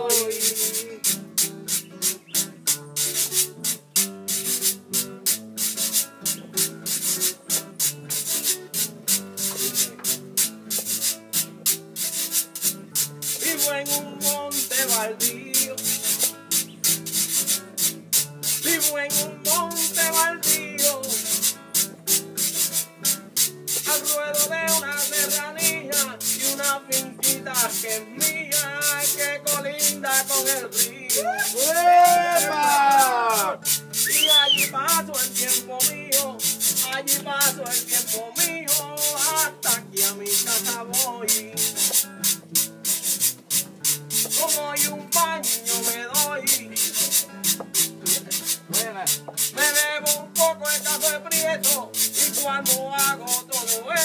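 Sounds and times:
acoustic guitar strumming: 0.0s - 54.0s
scraping percussion: 3.0s - 13.9s, 14.5s - 54.0s.

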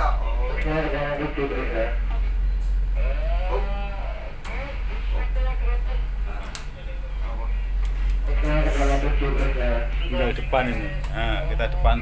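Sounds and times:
boat engines droning: 0.0s - 12.0s.

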